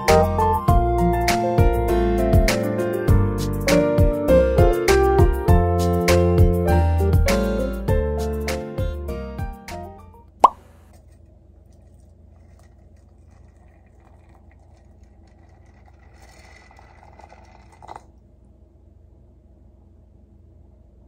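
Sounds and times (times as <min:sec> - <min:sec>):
background music: 0:00.0 - 0:10.2
water pouring into teapot: 0:11.7 - 0:18.2.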